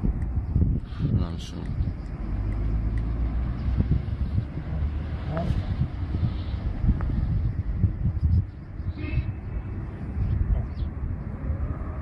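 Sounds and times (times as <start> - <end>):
engine humming: 1.6 - 8.1.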